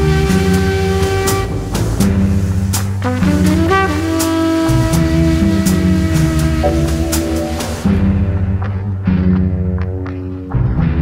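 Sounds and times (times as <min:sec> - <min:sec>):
electronic music: 0:02.7 - 0:09.0
cymbal-like hit: 0:06.7 - 0:08.4.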